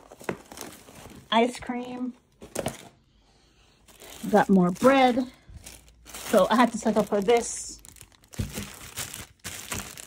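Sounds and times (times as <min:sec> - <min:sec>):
plastic packaging crinkling: 0:00.0 - 0:01.5, 0:03.8 - 0:10.0.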